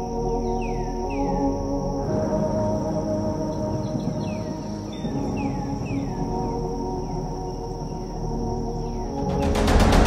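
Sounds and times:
ambient music with held tones: 0:00.0 - 0:10.0
high insect drone: 0:00.0 - 0:10.0.

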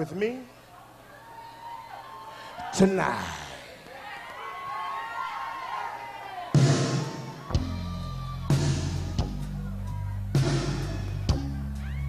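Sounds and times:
crowd calling out: 0:00.8 - 0:12.0
soul band playing ballad: 0:07.6 - 0:12.0.

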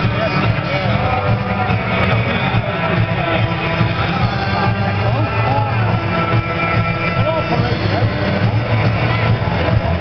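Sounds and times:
crowd voices: 0:00.0 - 0:10.0
music over public-address system: 0:00.0 - 0:10.0.

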